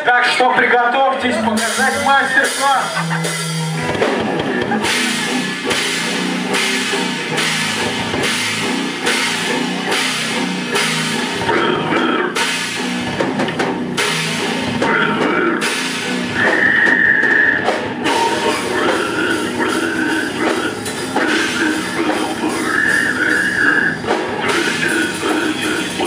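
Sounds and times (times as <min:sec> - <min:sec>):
death metal band playing: 0:00.0 - 0:26.0
high held squeal: 0:16.3 - 0:26.0.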